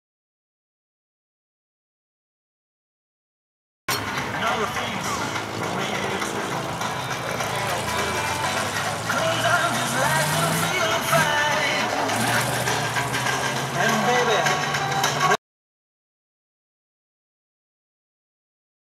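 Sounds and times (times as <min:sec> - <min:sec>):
people talking and laughing: 0:03.9 - 0:15.4
truck engine pulling away: 0:03.9 - 0:15.4.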